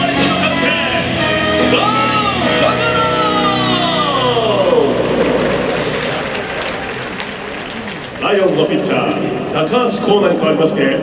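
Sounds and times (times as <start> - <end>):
stadium music with pitch slide: 0.0 - 10.1
crowd applause: 4.1 - 9.4.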